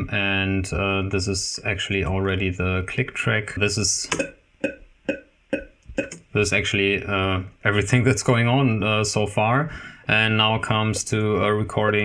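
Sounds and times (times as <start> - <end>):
metronome clicks: 4.1 - 6.2.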